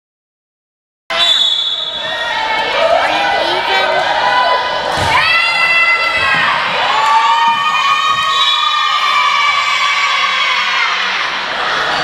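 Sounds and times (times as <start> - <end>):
girls cheering and yelling: 2.0 - 12.0.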